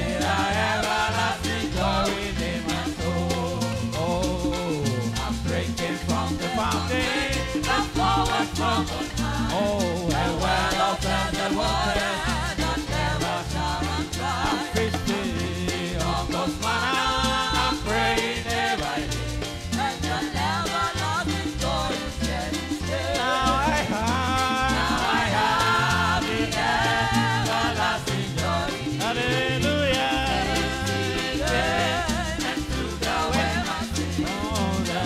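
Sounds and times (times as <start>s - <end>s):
bass line: 0.0s - 35.0s
percussion: 0.0s - 35.0s
voices singing a hymn: 0.0s - 35.0s.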